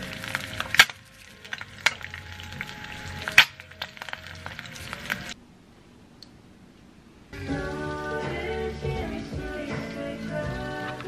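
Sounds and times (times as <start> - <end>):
egg sizzling in oil: 0.0 - 5.4.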